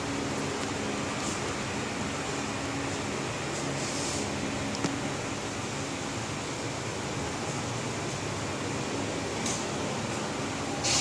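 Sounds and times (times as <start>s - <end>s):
steady room noise hiss: 0.0s - 11.0s.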